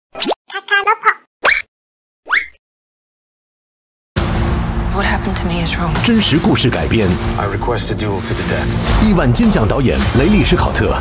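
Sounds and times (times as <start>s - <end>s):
chirpy voice-like sound: 0.2s - 1.3s.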